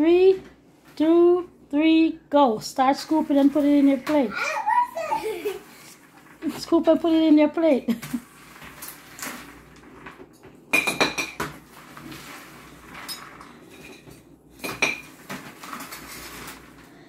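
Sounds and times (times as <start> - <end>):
metal cutlery scraping ceramic bowls: 12.9 - 16.6.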